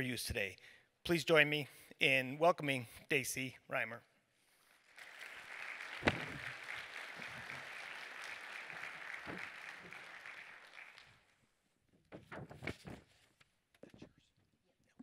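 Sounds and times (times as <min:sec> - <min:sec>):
audience applauding: 0:04.8 - 0:11.4
thump: 0:06.0 - 0:06.4.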